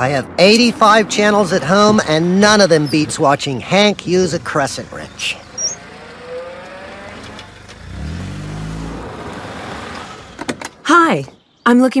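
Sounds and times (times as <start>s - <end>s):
car engine slowing to a stop: 2.7s - 10.6s.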